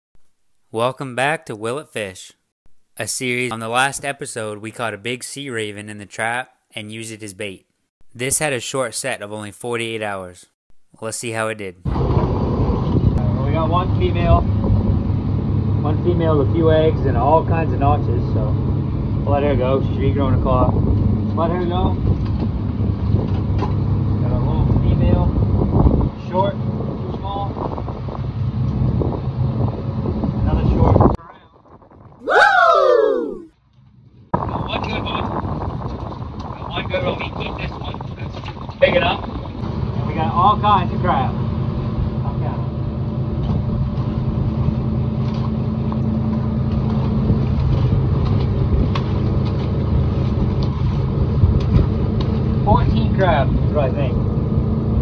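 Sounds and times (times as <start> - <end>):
wind on microphone: 11.9 - 15.1, 19.9 - 33.5, 34.4 - 40.6, 47.0 - 55.0
boat engine running: 34.4 - 55.0.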